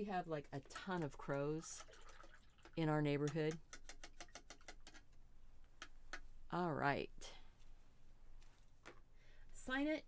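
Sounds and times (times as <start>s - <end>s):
paintbrush tapping water cup: 2.6s - 6.2s.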